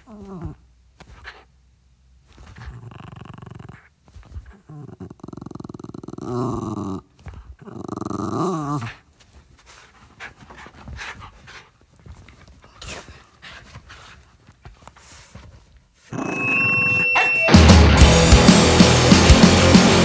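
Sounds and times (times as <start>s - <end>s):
dog vocalising: 2.4s - 9.0s.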